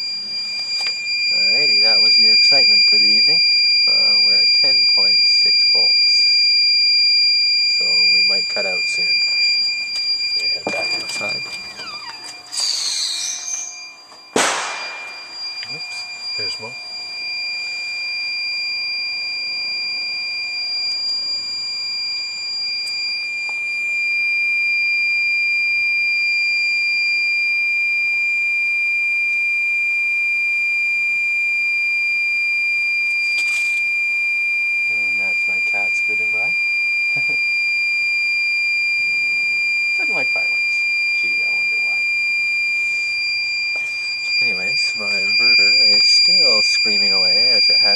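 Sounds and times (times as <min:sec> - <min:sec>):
high-pitched alarm tone: 0:00.0 - 0:47.9
sharp bang: 0:14.4 - 0:15.4.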